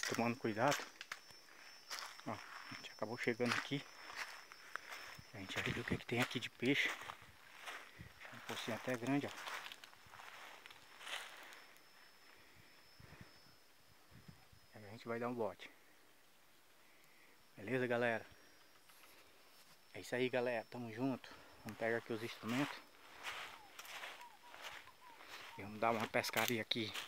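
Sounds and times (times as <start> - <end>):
footsteps on dry leaves and stones: 0.0 - 11.9, 21.6 - 27.0
background hiss: 0.0 - 27.0
faint high-pitched whine: 0.0 - 27.0.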